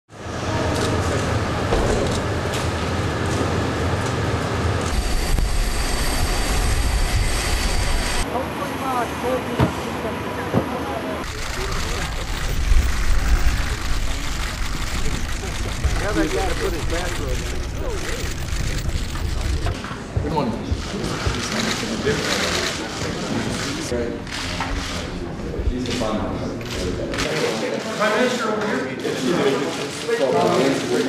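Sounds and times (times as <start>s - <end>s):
faint voices: 8.2s - 31.0s
low rumble: 11.2s - 19.7s.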